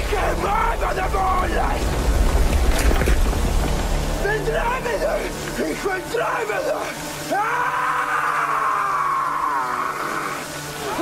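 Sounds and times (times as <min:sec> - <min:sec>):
man screaming: 0:06.2 - 0:11.0.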